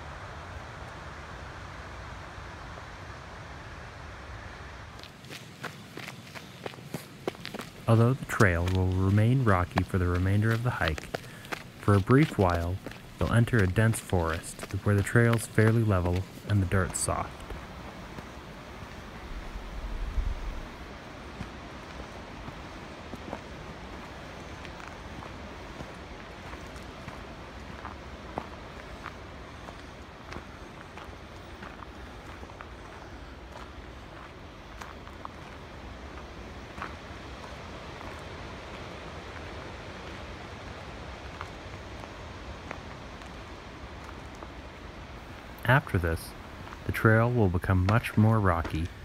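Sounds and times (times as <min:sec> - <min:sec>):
steady background hiss: 0:00.0 - 0:49.0
footsteps on dirt trail: 0:04.9 - 0:49.0.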